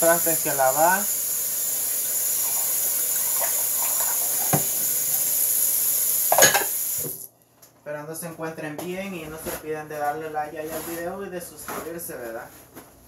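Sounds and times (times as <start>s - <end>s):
tap running into sink: 3.4s - 5.2s
dishware clattering: 6.3s - 6.8s.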